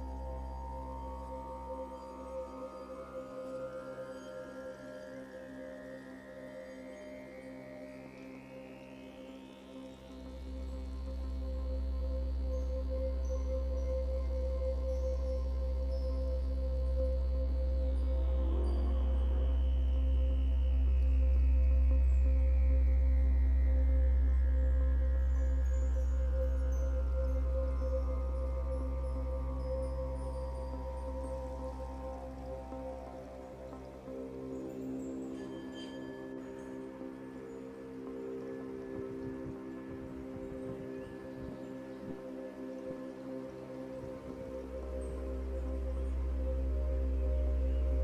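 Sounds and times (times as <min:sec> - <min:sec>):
ambient music of held tones: 0:00.0 - 0:48.0.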